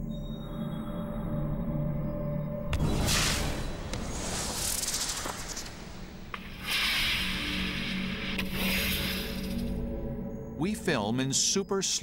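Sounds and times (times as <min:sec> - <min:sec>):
rockets firing with hissing rush: 0:03.1 - 0:09.6.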